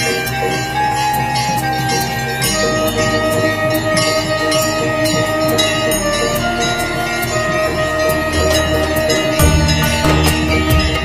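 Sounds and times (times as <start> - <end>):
drumming: 0.0 - 11.0
small bell or cymbal struck: 8.4 - 11.0.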